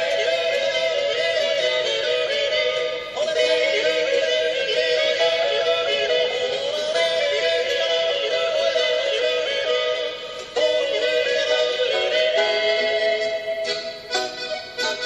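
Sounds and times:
folk band playing: 0.0s - 15.0s
man yodelling: 0.0s - 15.0s.

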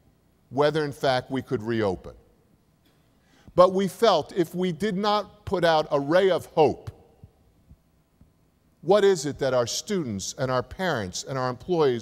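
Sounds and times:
man speaking: 0.5s - 2.2s, 3.6s - 7.0s, 8.8s - 12.0s.

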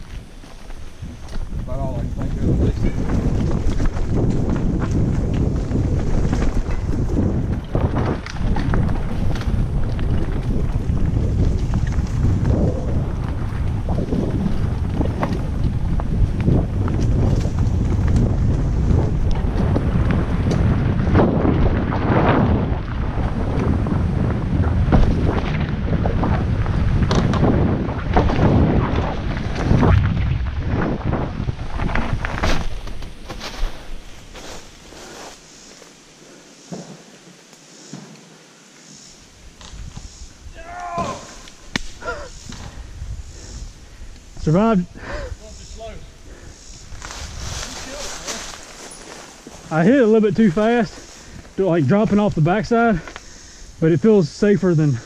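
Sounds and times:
wind buffeting microphone: 0.0s - 35.4s, 39.3s - 55.0s
tyres rolling over dirt trail: 0.0s - 38.4s, 39.3s - 55.0s
bike knocking over bumps: 2.2s - 33.6s.

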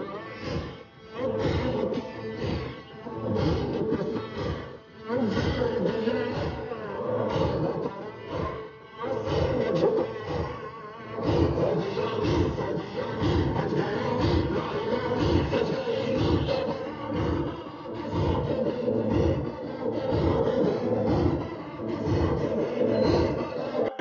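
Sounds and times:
rhythmic lament chanting: 0.0s - 24.0s.

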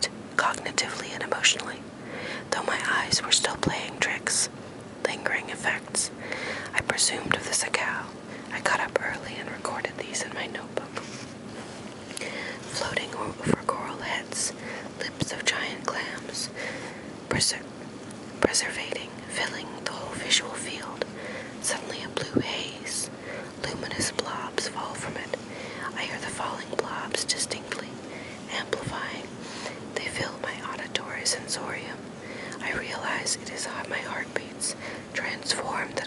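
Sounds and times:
person whispering: 0.0s - 1.8s, 2.4s - 11.1s, 12.1s - 16.6s, 17.3s - 17.6s, 18.4s - 32.0s, 32.6s - 36.0s.

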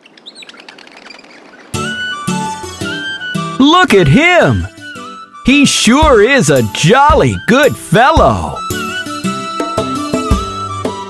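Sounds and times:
faint birds chirping: 0.0s - 9.4s
music: 1.8s - 11.0s.

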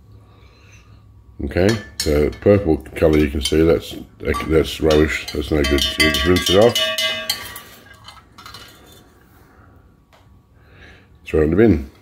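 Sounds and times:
discs clinking against glass: 4.3s - 9.0s.

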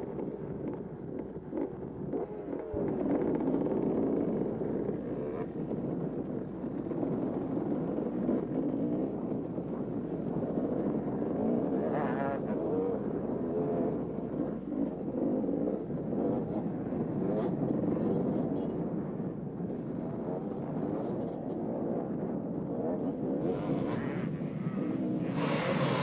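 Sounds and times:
dirt bike engine revving: 23.3s - 26.0s.

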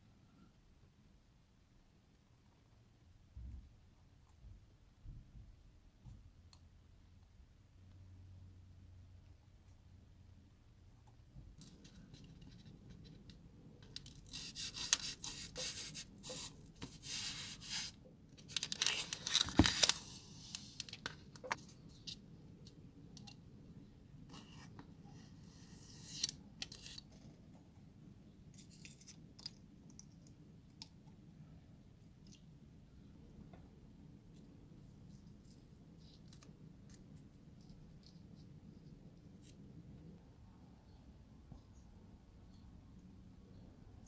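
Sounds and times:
craft knife cutting foam: 14.1s - 18.0s, 24.4s - 27.1s.

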